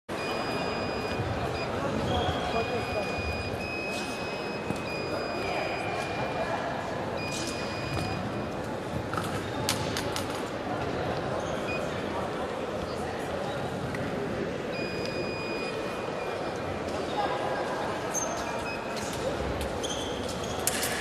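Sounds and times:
reverberant hall noise: 0.1 - 21.0.

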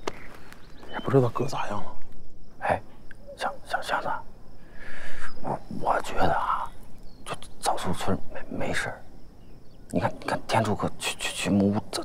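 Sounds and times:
man speaking: 0.9 - 2.0, 5.4 - 9.0, 9.9 - 12.0.

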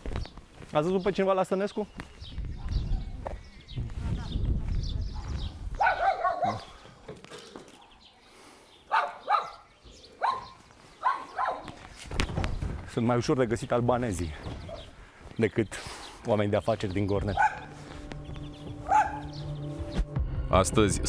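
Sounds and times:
dog barking: 5.8 - 6.8, 8.9 - 11.8, 17.3 - 17.8, 18.8 - 19.4.

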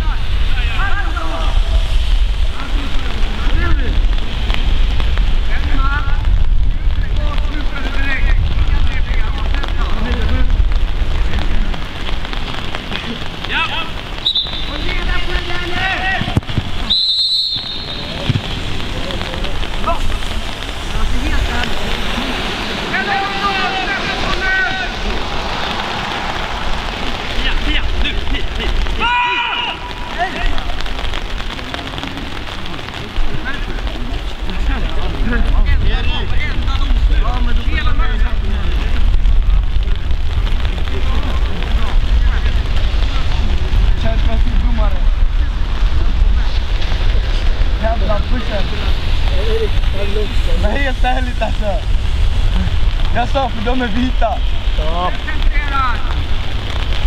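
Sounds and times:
wind on microphone: 0.0 - 13.4, 32.6 - 57.0
rain on an umbrella: 0.0 - 57.0
people shouting: 21.4 - 30.8.

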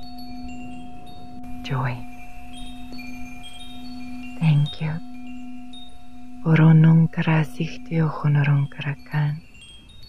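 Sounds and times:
chimes ringing: 0.0 - 10.0.

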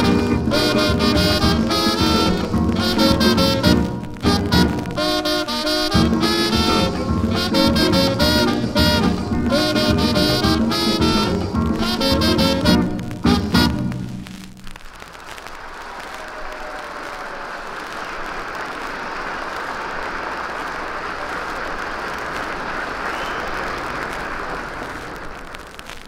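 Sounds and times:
audience applauding: 0.0 - 14.1, 14.8 - 26.0.

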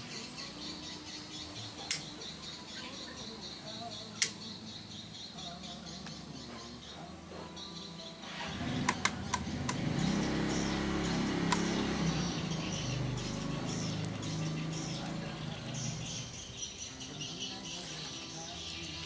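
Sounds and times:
toggle switch clicks: 11.5 - 11.7.

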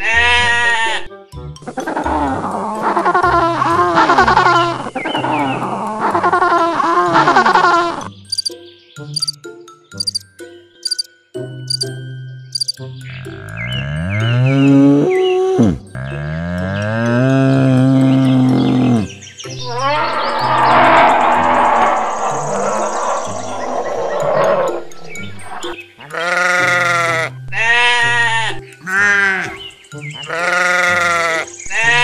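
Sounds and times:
sheep bleating: 0.0 - 1.1, 26.0 - 29.6, 30.2 - 32.0
background music: 0.0 - 21.8, 23.0 - 32.0.

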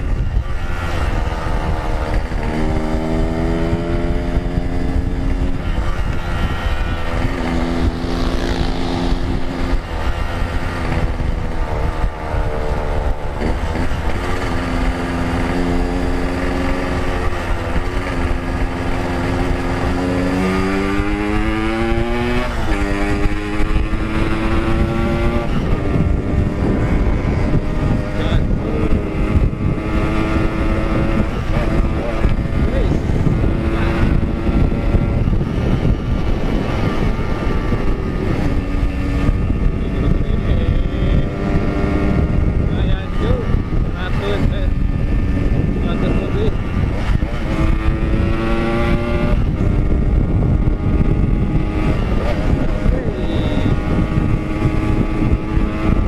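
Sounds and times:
two-stroke motorcycle engine revving: 0.0 - 56.0
wind on microphone: 0.0 - 56.0.

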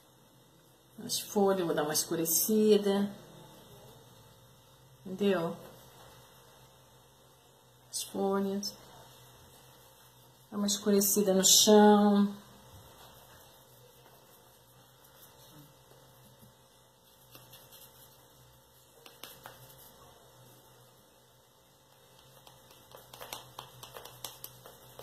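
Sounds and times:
faint steady hum: 0.0 - 25.0
paintbrush tapping and rustling: 8.7 - 11.6, 12.6 - 21.0, 21.7 - 25.0.

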